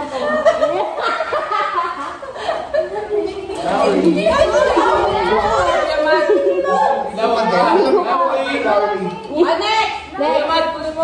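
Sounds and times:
people laughing and chattering: 0.0 - 11.0.

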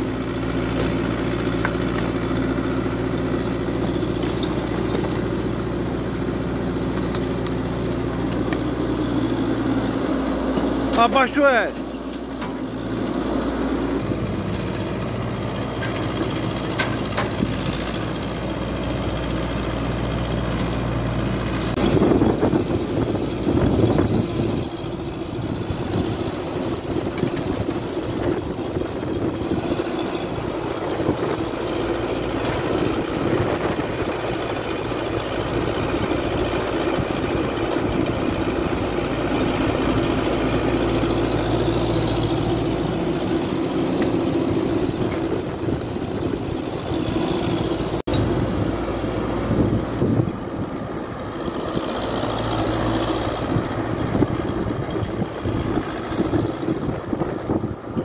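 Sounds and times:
diesel engines running: 0.0 - 58.0.

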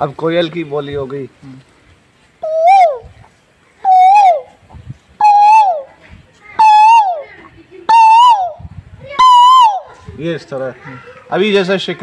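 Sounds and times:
man imitating bird calls: 2.4 - 3.2, 3.8 - 4.6, 5.2 - 5.9, 6.6 - 7.3, 7.9 - 8.6, 9.2 - 9.9.

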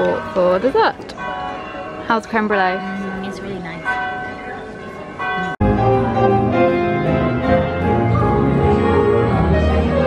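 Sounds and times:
sustained ringing tones: 0.0 - 8.6
piano music: 0.0 - 10.0.

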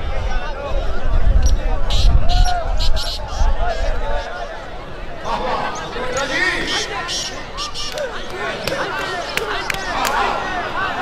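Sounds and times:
crowd: 0.0 - 11.0
voices speaking: 0.2 - 11.0.

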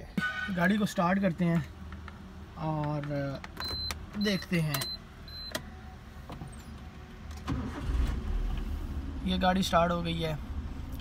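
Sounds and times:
car engine starting and idling: 0.2 - 11.0.

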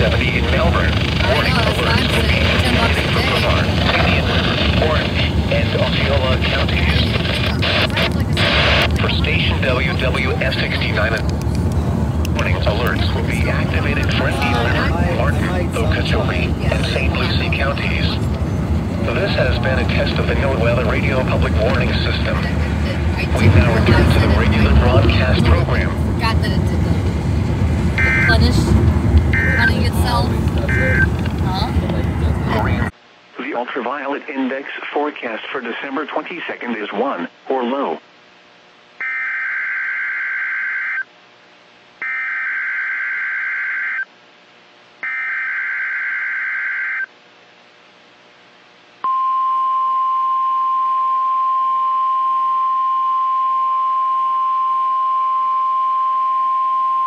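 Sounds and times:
weather radio broadcast voice: 0.0 - 11.4, 12.2 - 27.1, 27.9 - 38.1
car road rumble: 0.0 - 32.9
short beeps: 49.0 - 57.0.

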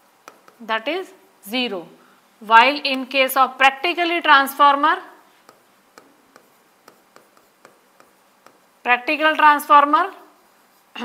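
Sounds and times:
pen scratching on a board: 0.2 - 0.7, 5.4 - 8.7
woman speaking: 0.6 - 5.2, 8.9 - 10.3.

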